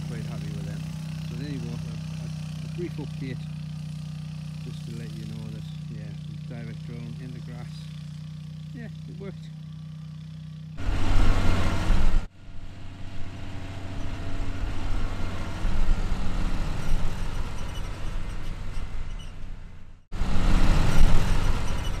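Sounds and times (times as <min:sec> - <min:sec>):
tractor engine running: 0:00.0 - 0:22.0.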